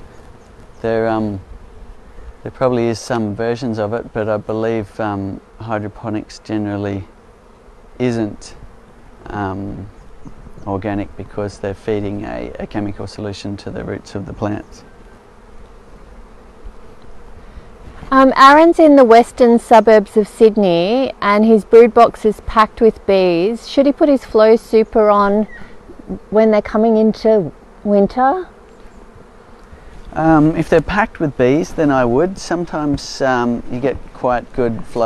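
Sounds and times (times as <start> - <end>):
honeybees buzzing: 0.0 - 35.0.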